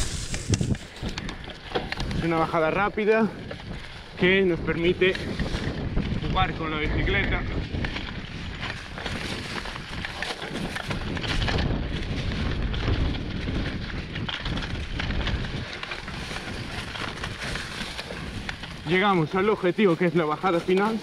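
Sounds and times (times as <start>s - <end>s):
bike rattling: 0.0s - 21.0s
bike tyres rumbling on dirt: 0.0s - 21.0s
wind buffeting microphone: 0.0s - 21.0s.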